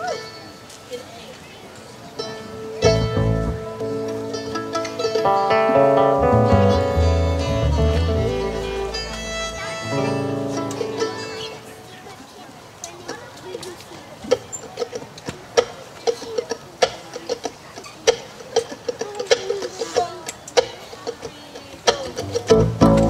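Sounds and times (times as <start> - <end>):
mandolin: 2.1 - 12.0, 21.8 - 23.0
fiddle: 2.1 - 12.1
acoustic guitars: 2.2 - 11.9, 22.1 - 23.0
upright bass notes: 2.8 - 11.1, 22.1 - 23.0.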